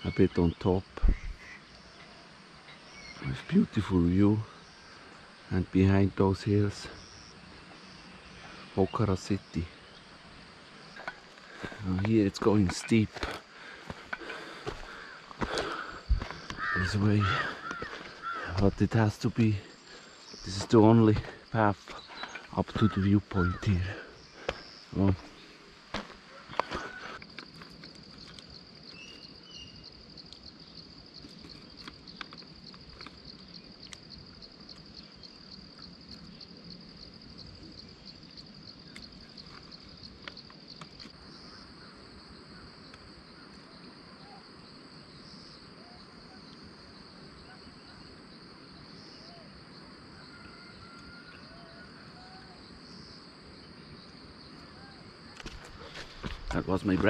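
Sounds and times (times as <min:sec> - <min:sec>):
insects droning high-pitched: 0:00.0 - 0:57.0
higher dipping insect drone: 0:02.9 - 0:28.7.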